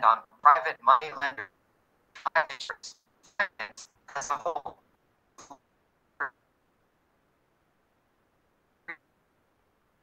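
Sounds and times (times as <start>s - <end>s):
clipped voice fragments: 2.2s - 4.8s.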